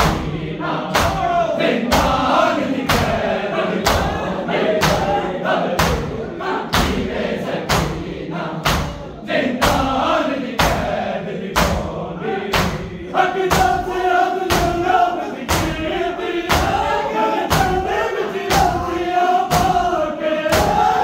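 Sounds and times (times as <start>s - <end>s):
men chanting: 0.0s - 21.0s
hands slapping chests: 3.8s - 4.1s, 7.7s - 9.0s, 11.5s - 11.9s.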